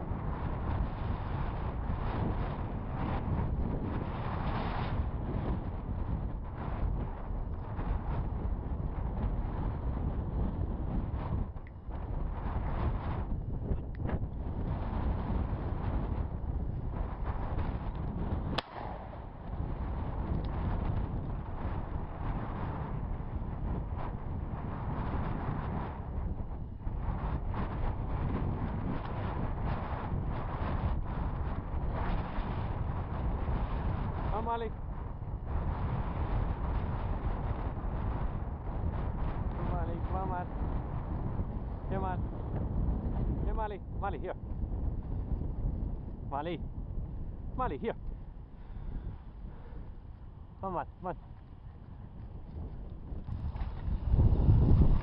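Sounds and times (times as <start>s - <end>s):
wind buffeting microphone: 0.0s - 55.0s
sharp click: 18.5s - 19.1s.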